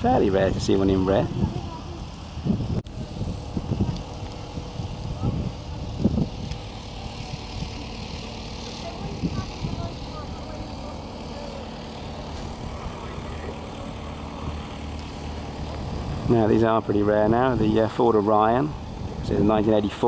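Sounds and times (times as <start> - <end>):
low steady drone: 0.0 - 20.0
wind buffeting microphone: 0.0 - 20.0
faint voices: 3.8 - 20.0.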